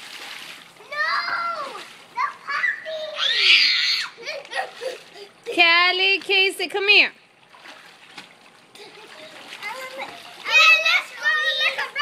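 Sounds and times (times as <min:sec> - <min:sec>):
water splashing in pool: 0:00.0 - 0:12.0.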